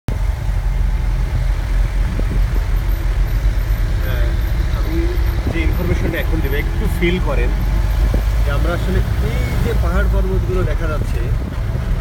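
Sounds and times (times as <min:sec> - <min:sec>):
vehicle engine and road noise: 0:00.1 - 0:12.0
voices talking: 0:03.8 - 0:11.4.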